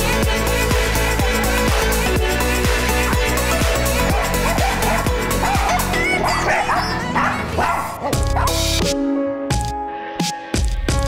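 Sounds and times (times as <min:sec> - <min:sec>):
dance music: 0:00.0 - 0:11.0
dog barking and yipping: 0:01.2 - 0:02.1, 0:02.8 - 0:08.8.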